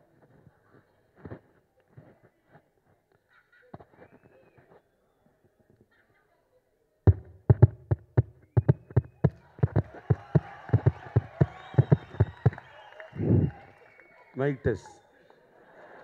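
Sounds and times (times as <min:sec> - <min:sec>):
audience noise: 0:07.2 - 0:16.0.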